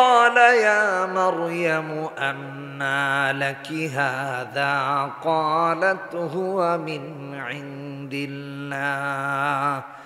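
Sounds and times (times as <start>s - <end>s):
man chanting melodic recitation: 0.0s - 10.0s.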